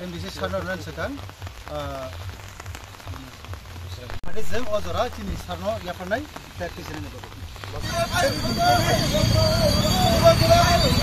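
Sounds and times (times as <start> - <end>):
rain pattering: 0.0 - 11.0.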